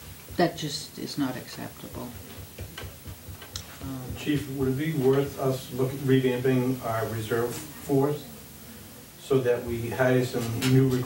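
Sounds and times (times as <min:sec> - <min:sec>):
man talking: 0:03.6 - 0:08.4, 0:09.2 - 0:11.0.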